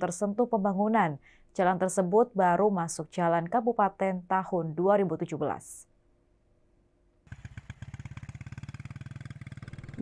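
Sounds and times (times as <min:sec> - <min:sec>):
motorcycle engine running: 0:07.3 - 0:10.0.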